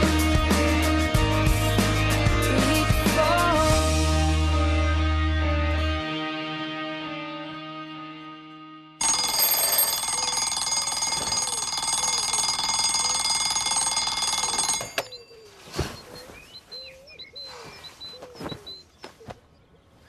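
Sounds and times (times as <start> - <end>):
bell alarm clock ringing: 9.0 - 15.4
birds chirping and cooing: 14.9 - 20.0.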